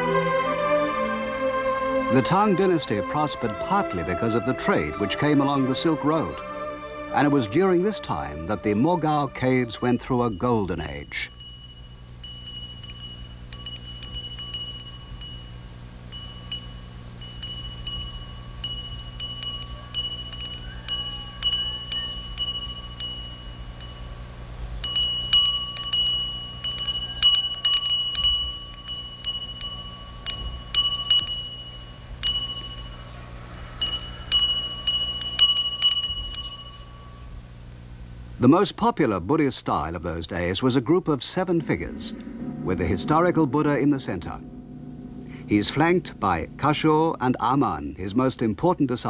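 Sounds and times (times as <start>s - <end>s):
steady low hum: 1.6s - 49.0s
wind chimes tinkling: 7.2s - 37.4s, 45.2s - 49.0s.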